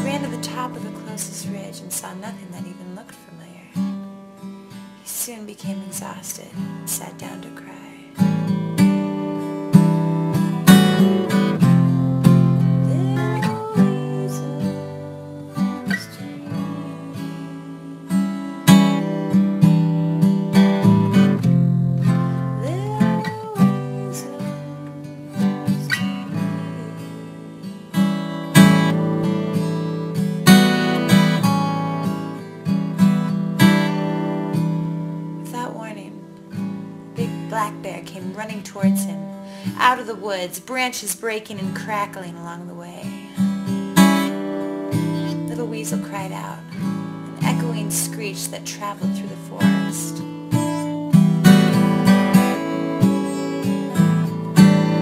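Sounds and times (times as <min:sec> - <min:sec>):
acoustic guitar music: 0:00.0 - 0:55.0.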